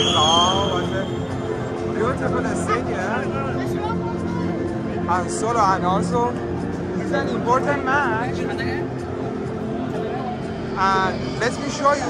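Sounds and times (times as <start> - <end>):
high tone: 0.0 - 2.0
crowd voices: 0.0 - 12.0
music over stadium loudspeakers: 0.0 - 12.0.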